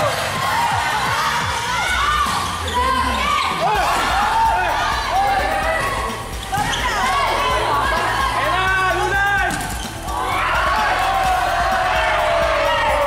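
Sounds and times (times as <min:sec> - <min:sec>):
players and spectators shouting: 0:00.0 - 0:13.0
volleyball struck and bouncing: 0:09.4 - 0:10.1.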